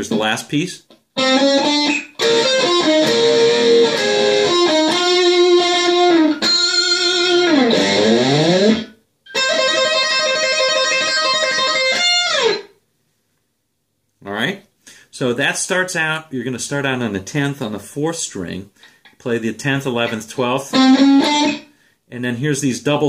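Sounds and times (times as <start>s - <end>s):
electric guitar lead: 1.2s - 12.7s, 20.7s - 21.7s.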